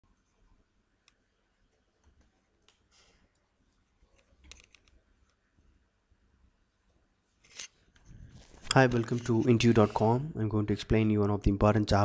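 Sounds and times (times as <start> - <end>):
faint mouse and key clicks: 1.0 - 5.4.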